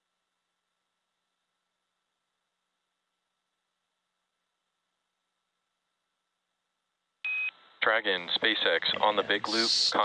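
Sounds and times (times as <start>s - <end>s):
man talking over radio: 7.8s - 10.0s.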